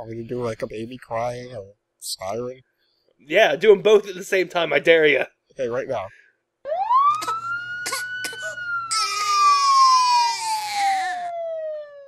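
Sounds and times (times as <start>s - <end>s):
man imitating siren: 6.7s - 12.0s
man imitating baby crying: 8.9s - 11.3s.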